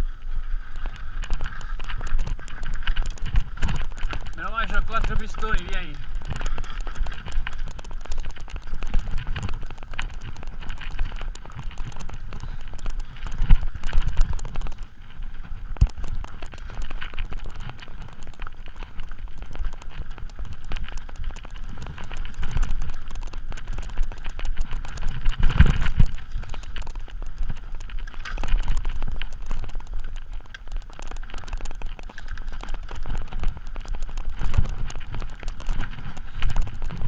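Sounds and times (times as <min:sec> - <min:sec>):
mountain bike rattling over trail: 0:00.0 - 0:37.0.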